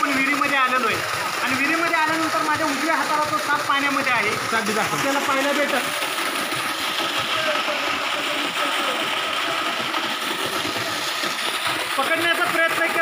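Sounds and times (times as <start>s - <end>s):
water gushing from pipe: 0.0s - 13.0s.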